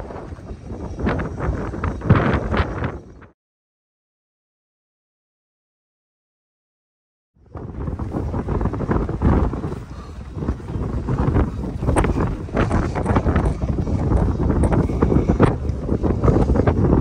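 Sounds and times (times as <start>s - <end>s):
wind buffeting microphone: 0.0s - 3.4s, 7.4s - 17.0s.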